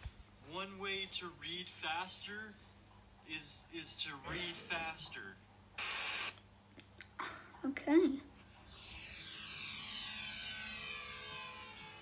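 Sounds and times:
whistle-like tone gliding down: 8.6 - 12.0.

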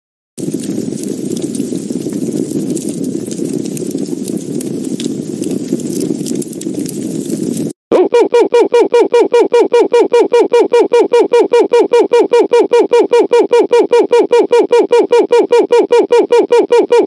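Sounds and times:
cartoon fire rumble with crackles: 0.4 - 8.3.

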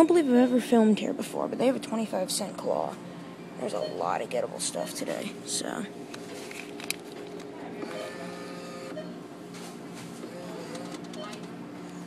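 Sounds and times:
claw machine motor whirring: 6.7 - 9.1, 10.2 - 11.5.

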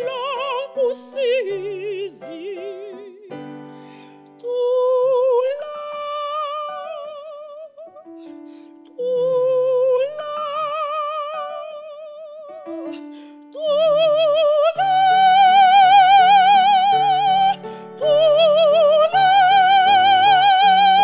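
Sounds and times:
piano chords: 0.0 - 21.0
soprano singing with vibrato: 0.0 - 21.0.

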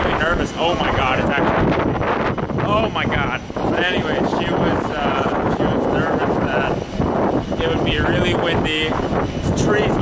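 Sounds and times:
voices talking: 0.0 - 1.8, 2.5 - 6.9, 7.5 - 10.0
wind noise on microphone: 0.0 - 10.0.

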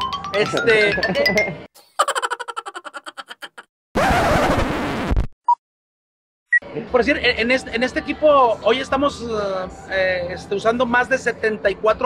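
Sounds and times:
loud burst of static: 4.0 - 5.3.

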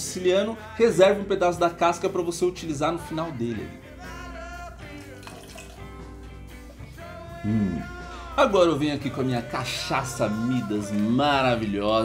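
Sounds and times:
background music: 0.0 - 12.0
liquid pouring into cocktail shaker: 4.8 - 6.9.

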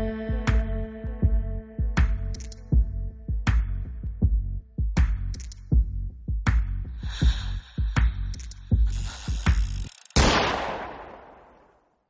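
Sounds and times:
heavy bass beats: 0.0 - 9.9
gunshot sound effect: 10.2 - 11.8.

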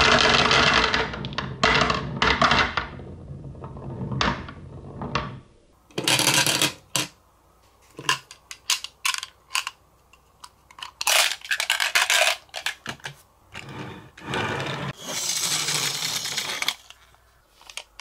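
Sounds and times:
marbles clattering onto wood: 0.0 - 5.3, 15.1 - 17.2
marbles rolling in wooden groove: 0.0 - 7.1, 13.6 - 18.0.

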